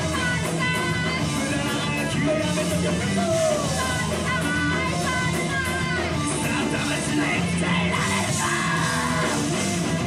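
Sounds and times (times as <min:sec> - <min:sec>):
distorted electric guitars: 0:00.0 - 0:10.0
drums: 0:00.0 - 0:10.0
shouted vocals: 0:06.6 - 0:09.7.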